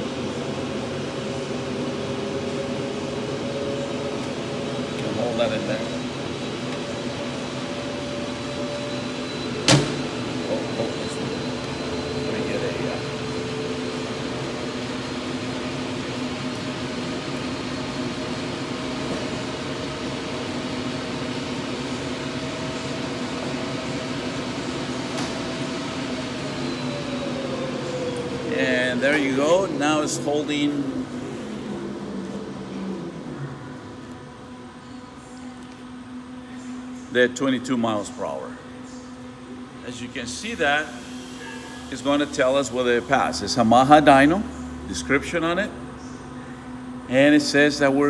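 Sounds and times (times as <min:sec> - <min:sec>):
dynamometer rollers and motor humming: 0:00.0 - 0:48.0.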